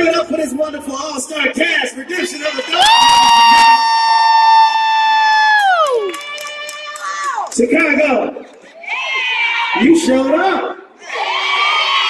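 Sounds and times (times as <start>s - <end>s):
crowd noise: 0.0s - 12.0s
person cheering whoop: 2.8s - 6.1s.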